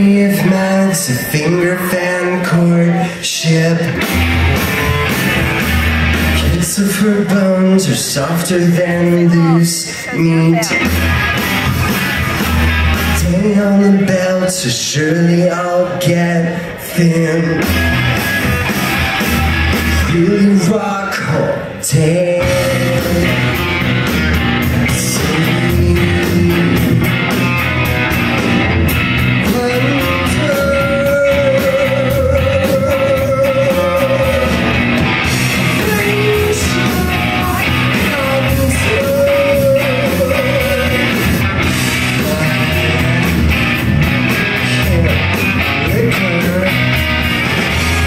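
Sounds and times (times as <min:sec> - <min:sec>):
electric bass: 0:00.0 - 0:09.6, 0:10.2 - 0:48.0
drums: 0:00.0 - 0:48.0
electric guitars: 0:00.0 - 0:48.0
live rock band playing: 0:00.0 - 0:48.0.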